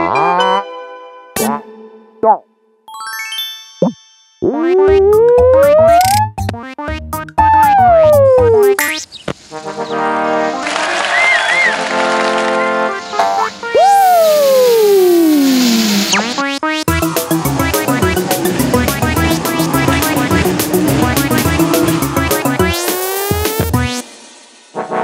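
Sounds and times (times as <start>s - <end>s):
rhythmic cartoon tune: 2.2s - 9.1s, 12.7s - 24.1s
falling whistle-like glide: 13.7s - 16.2s
sustained synthesizer chords: 16.9s - 24.0s.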